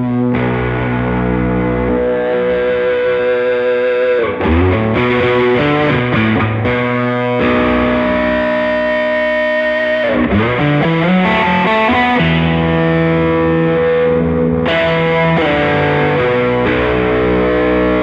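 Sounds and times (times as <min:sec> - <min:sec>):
distorted electric guitar: 0:00.0 - 0:18.0.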